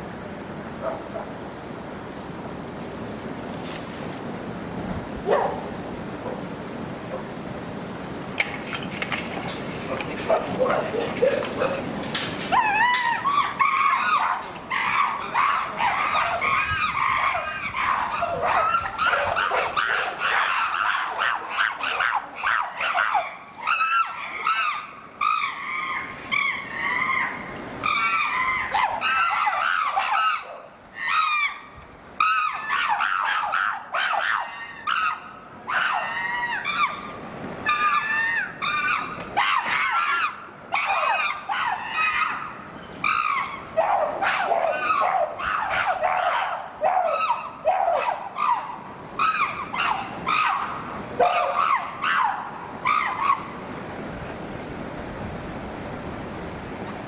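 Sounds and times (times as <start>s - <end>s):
chimpanzees screaming: 12.5s - 53.5s.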